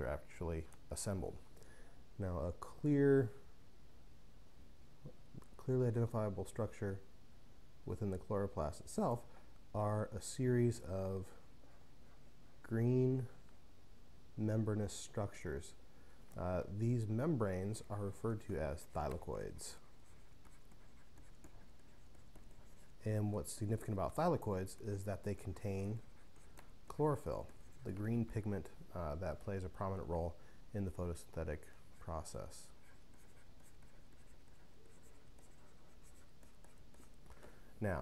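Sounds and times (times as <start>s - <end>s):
stylus scratching on tablet: 16.9s - 28.7s, 30.9s - 37.3s.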